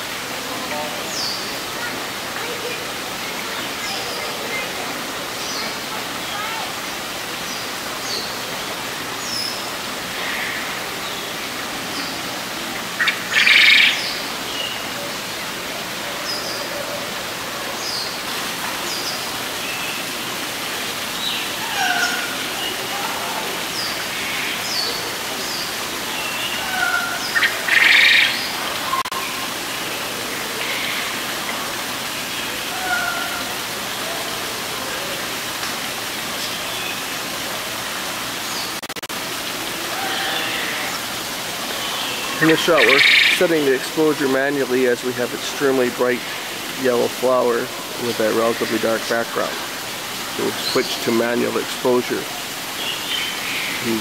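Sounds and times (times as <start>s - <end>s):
steady background hiss: 0.0s - 54.0s
small birds chirping: 1.0s - 15.6s, 17.7s - 29.4s, 41.6s - 49.5s, 50.1s - 54.0s.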